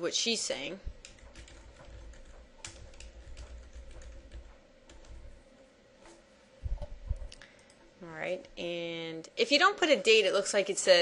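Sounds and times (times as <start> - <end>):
keyboard typing clicks: 0.9 - 5.4.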